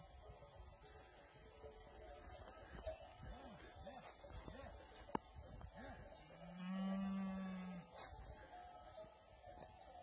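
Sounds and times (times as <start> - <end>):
cow mooing: 6.4 - 7.9.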